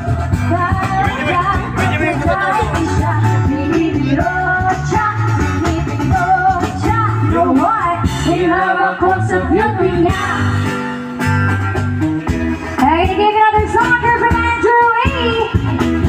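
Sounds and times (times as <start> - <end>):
women singing: 0.0 - 10.5
cajon beat: 0.0 - 16.0
electric bass: 0.0 - 16.0
electric guitar: 0.0 - 16.0.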